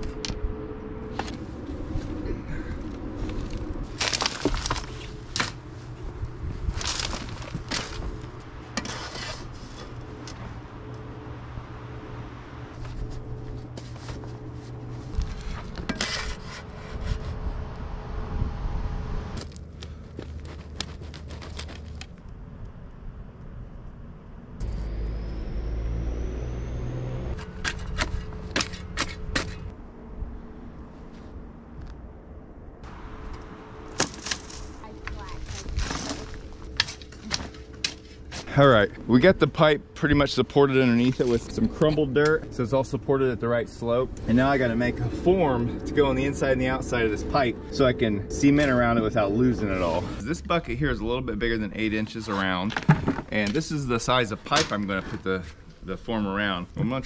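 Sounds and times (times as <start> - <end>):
dirt crumbling: 1.1 - 10.6, 19.4 - 22.4, 33.3 - 39.2.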